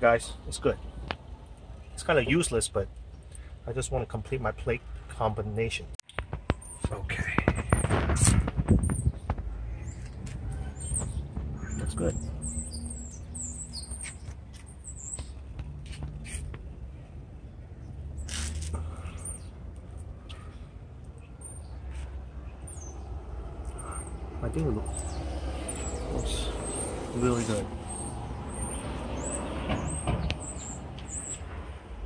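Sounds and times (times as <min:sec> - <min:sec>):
small birds chirping: 0:00.0 - 0:05.3, 0:06.0 - 0:31.6.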